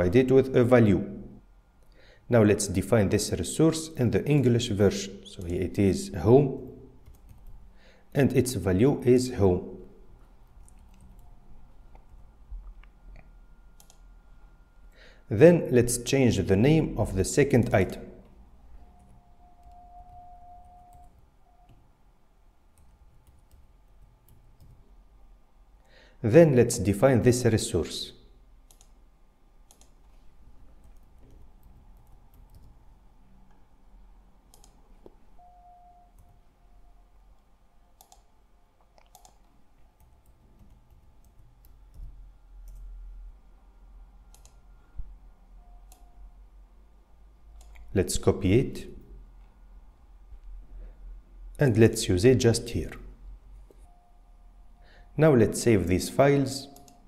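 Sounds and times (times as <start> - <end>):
keyboard typing: 6.6 - 7.7, 10.5 - 12.3, 13.2 - 14.1, 18.8 - 21.8, 22.7 - 24.9, 29.7 - 32.8, 34.5 - 35.2, 35.9 - 36.5, 38.0 - 38.3, 38.9 - 42.9, 44.3 - 44.6, 56.6 - 57.0
faint steady tone: 9.2 - 26.2, 28.1 - 47.9, 52.6 - 57.0
keyboard and mouse clicks: 29.7 - 30.2, 34.5 - 35.2, 38.0 - 42.9, 44.3 - 44.6.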